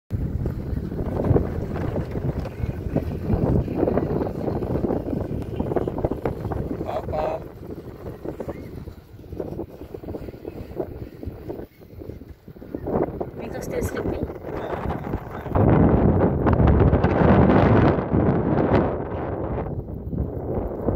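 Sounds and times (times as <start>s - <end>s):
wind buffeting microphone: 0.1s - 20.9s.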